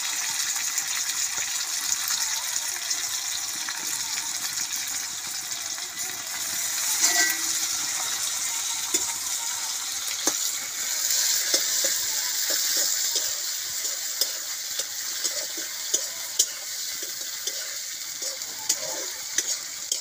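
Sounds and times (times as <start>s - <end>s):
food sizzling in hot oil: 0.0s - 20.0s
metal ladle scraping a wok: 6.6s - 20.0s.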